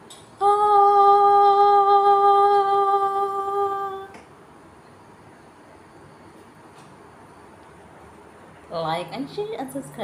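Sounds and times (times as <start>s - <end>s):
woman singing long note: 0.4s - 4.2s.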